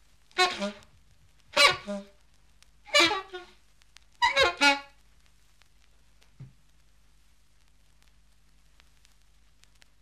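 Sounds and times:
jazz horn phrases: 0.3 - 2.2, 2.9 - 3.6, 4.2 - 5.0.

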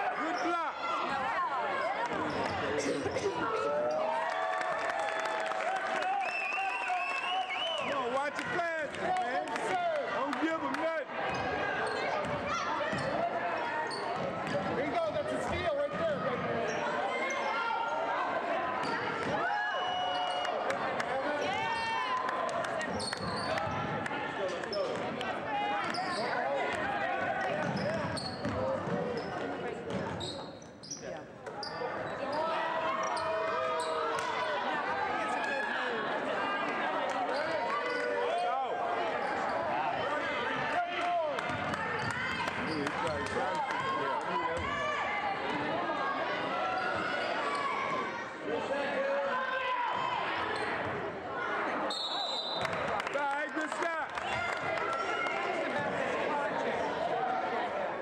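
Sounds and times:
echoing crowd voices: 0.0 - 58.0.

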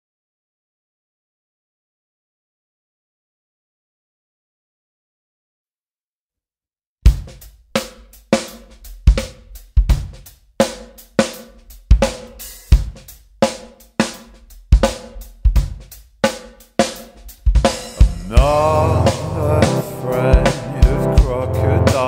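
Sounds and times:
drum kit playing a steady beat: 7.0 - 22.0.

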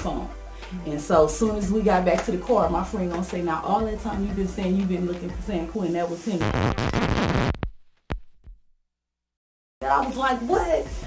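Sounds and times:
woman's voice: 0.0 - 6.5, 9.8 - 11.0.

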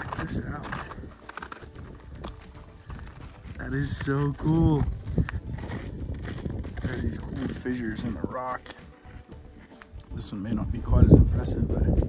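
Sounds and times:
footsteps crunching on snow: 0.0 - 12.0.

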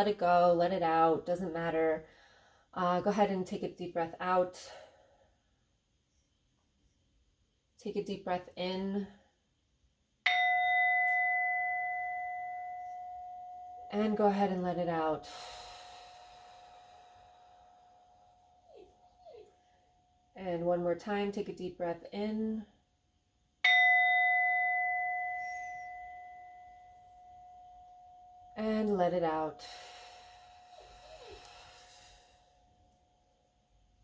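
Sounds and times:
singing bowl ringing: 10.2 - 20.4, 23.6 - 33.7.

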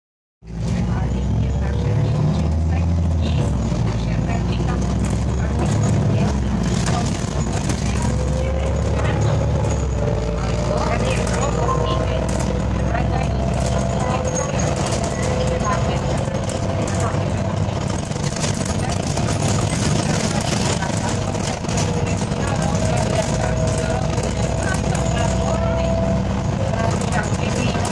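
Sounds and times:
bus engine rumble: 0.4 - 27.9
drivetrain whine: 0.5 - 27.9
light interior rattles: 0.7 - 27.9.

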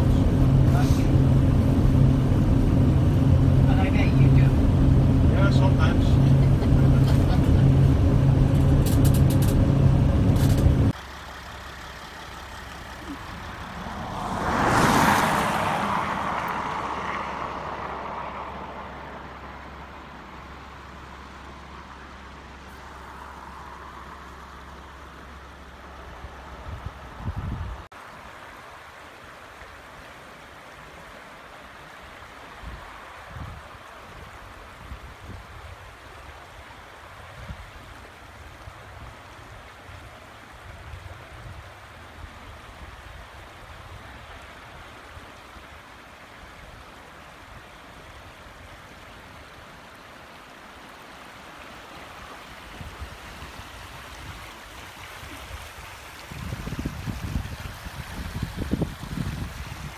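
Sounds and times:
road and tyre noise: 0.0 - 59.9.

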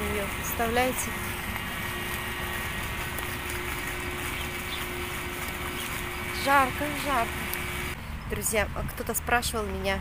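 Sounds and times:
constant low hum: 0.0 - 10.0
distant road traffic rumble: 0.0 - 10.0.

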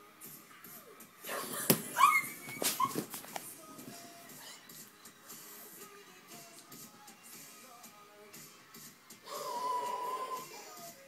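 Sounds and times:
girl's muffled squeals: 1.9 - 3.0
phone rustling: 2.4 - 4.1.

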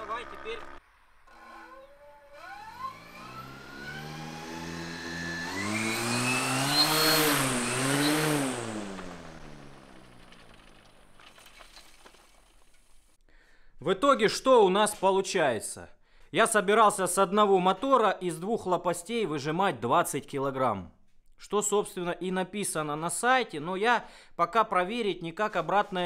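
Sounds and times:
electric motor whine: 0.0 - 11.1.

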